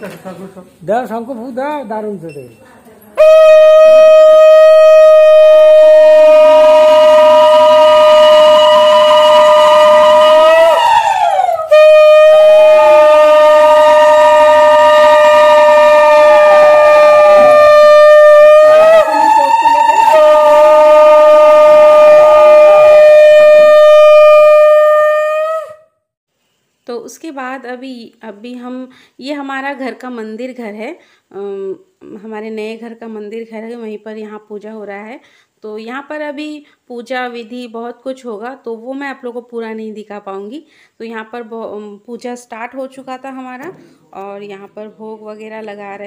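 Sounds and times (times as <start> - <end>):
conch shell blasts: 3.2 - 25.3.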